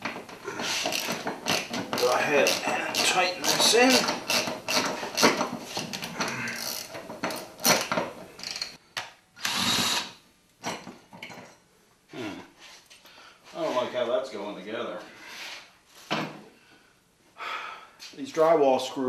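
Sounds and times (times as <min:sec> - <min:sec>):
metal clicking and rattling: 0:00.0 - 0:08.8
drill motor running: 0:09.4 - 0:10.2.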